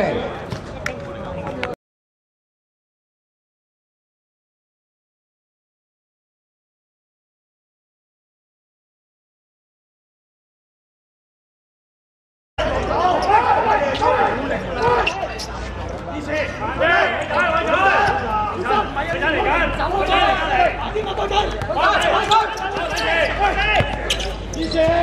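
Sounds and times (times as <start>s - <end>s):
people shouting and calling out: 12.6s - 25.0s.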